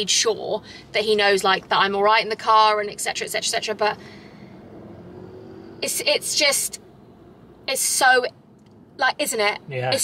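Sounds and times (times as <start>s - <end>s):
woman speaking: 0.0s - 4.0s, 5.8s - 6.8s, 7.7s - 8.3s, 9.0s - 10.0s
car cabin hum: 0.0s - 10.0s.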